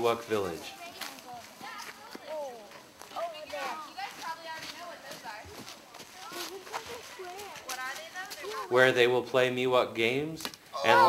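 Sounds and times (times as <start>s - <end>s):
children talking: 0.4s - 8.8s, 10.7s - 11.0s
footsteps on dry leaves: 0.4s - 8.8s.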